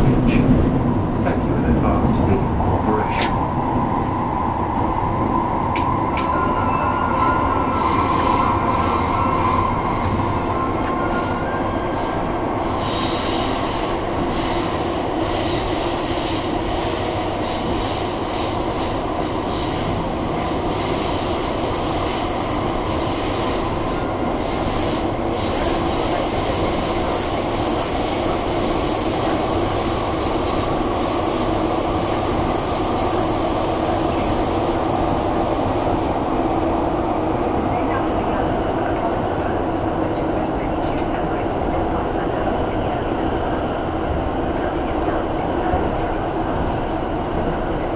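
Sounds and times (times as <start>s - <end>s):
train wheels rumbling on rail: 0.0s - 47.9s.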